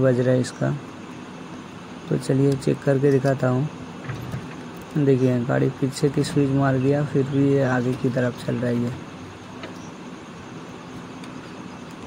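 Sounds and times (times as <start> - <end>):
faint motor hum: 0.0 - 12.0.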